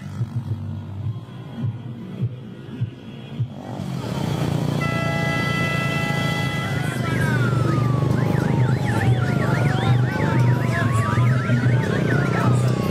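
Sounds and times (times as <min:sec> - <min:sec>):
music: 0:00.0 - 0:04.6, 0:06.6 - 0:12.9
motorcycle convoy engines: 0:00.0 - 0:12.9
multi-tone vehicle horn: 0:03.6 - 0:07.7.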